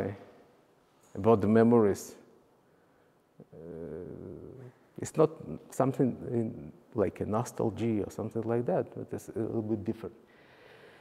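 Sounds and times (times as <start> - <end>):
man saying uh: 3.4 - 6.6.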